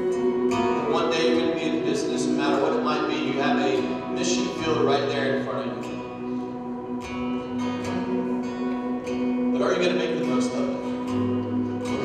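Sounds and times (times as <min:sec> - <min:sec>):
acoustic guitar played softly: 0:00.0 - 0:12.0.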